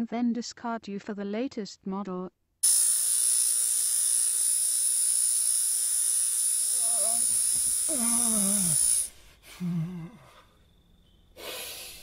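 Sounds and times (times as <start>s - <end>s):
crickets chirring: 2.6s - 12.0s.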